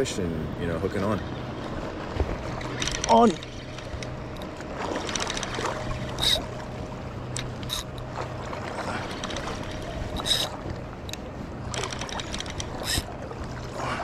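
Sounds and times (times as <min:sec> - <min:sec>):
low hum: 0:00.0 - 0:14.0
reel ticks: 0:02.6 - 0:06.5, 0:07.3 - 0:08.2, 0:09.0 - 0:13.2
fishing reel cranking: 0:06.2 - 0:06.4, 0:07.4 - 0:08.0, 0:10.1 - 0:10.5, 0:11.1 - 0:13.1.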